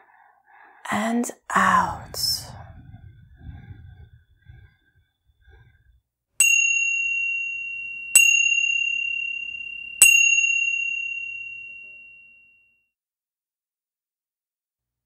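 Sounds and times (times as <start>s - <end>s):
chime ringing: 6.4s - 12.6s.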